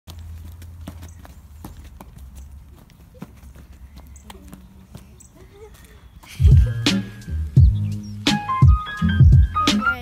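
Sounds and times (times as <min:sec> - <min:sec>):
running footsteps on concrete: 0:00.1 - 0:07.8.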